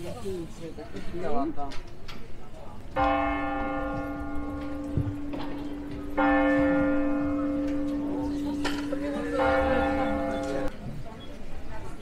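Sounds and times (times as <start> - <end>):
large bell ringing: 3.0 - 10.7.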